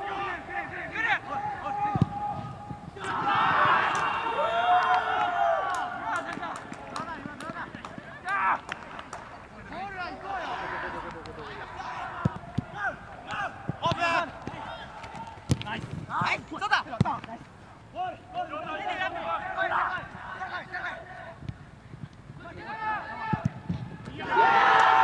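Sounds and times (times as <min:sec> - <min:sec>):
players shouting: 0:00.0 - 0:17.3, 0:17.9 - 0:21.4, 0:22.4 - 0:25.0
ball being kicked: 0:13.7 - 0:16.1.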